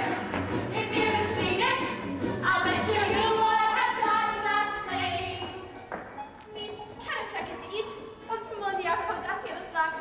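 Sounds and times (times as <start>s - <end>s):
quiet musical accompaniment: 0.0s - 10.0s
women speaking and calling out: 6.6s - 10.0s.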